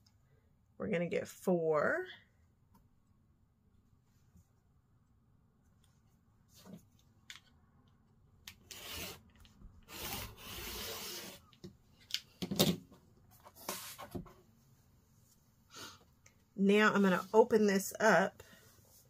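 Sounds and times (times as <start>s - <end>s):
ruler and fabric rubs and clicks: 8.5s - 11.6s.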